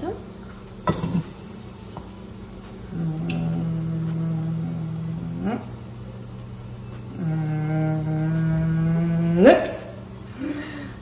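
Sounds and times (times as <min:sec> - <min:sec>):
woman humming low notes: 0:00.8 - 0:11.0.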